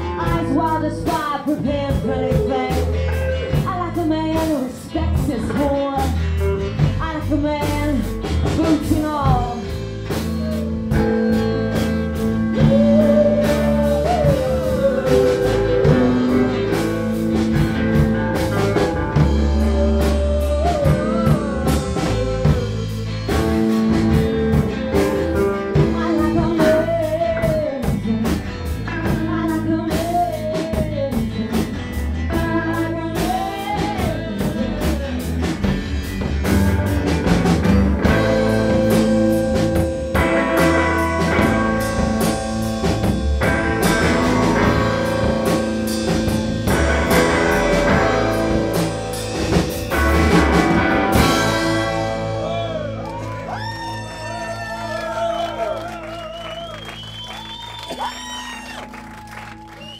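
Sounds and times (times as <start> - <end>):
live rock band playing: 0.0 - 59.9.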